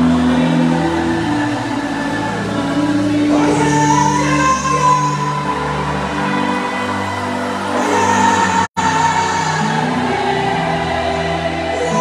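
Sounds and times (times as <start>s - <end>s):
live gospel band and singers: 0.0s - 12.0s.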